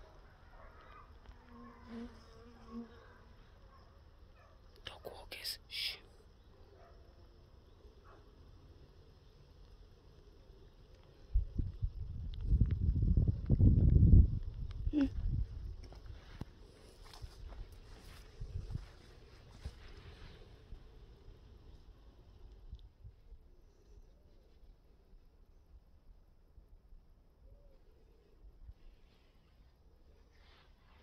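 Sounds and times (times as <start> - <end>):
rustling and thudding footsteps: 15.8 - 20.4.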